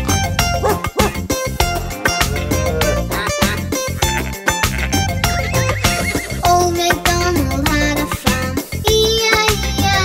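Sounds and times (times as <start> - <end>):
nursery rhyme backing music: 0.0 - 10.0
cartoon horse whinny: 1.9 - 3.5.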